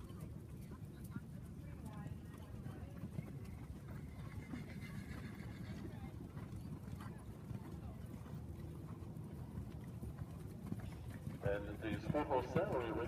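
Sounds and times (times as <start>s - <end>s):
hoofbeats on sand: 0.0s - 13.0s
faint voices: 11.3s - 13.0s.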